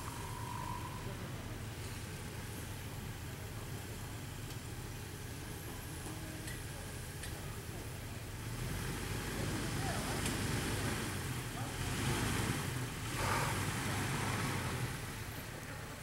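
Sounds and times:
car engine running at low revs: 0:00.0 - 0:16.0.

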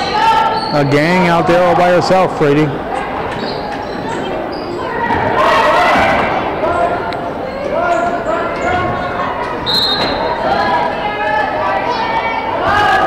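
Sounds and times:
sneaker squeaks: 0:00.0 - 0:01.3, 0:03.0 - 0:06.9, 0:07.5 - 0:10.9
spectators' voices: 0:00.0 - 0:13.0.

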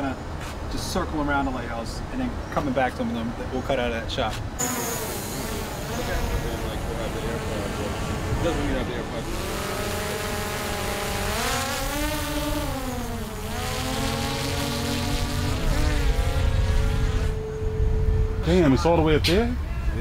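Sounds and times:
drone propellers whining: 0:04.6 - 0:19.0
wind rumble on microphone: 0:14.0 - 0:20.0.

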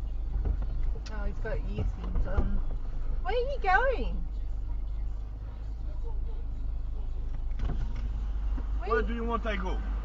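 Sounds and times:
car idling: 0:00.0 - 0:10.0.

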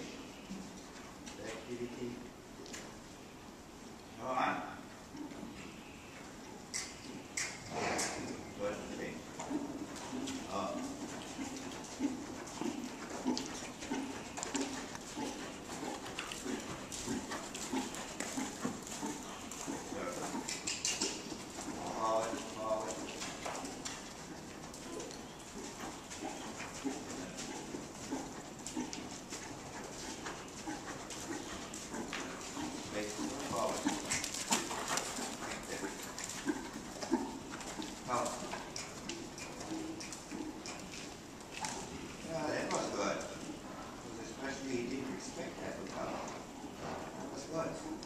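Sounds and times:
horse hoofbeats on sand: 0:08.6 - 0:43.6.

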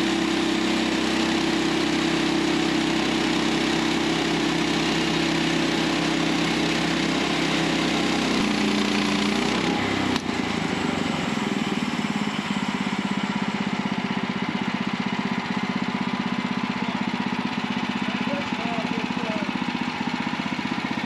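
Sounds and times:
band blade sawing log: 0:00.0 - 0:14.6
sawmill engine running under load: 0:00.0 - 0:21.0.

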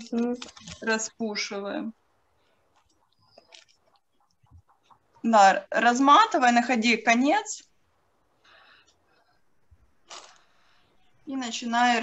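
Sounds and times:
wool being pulled apart: 0:10.0 - 0:10.5.

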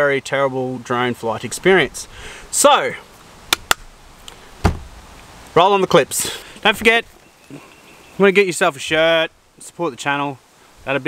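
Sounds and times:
faint steady hiss: 0:00.0 - 0:11.0
soft low thump: 0:04.6 - 0:05.0.

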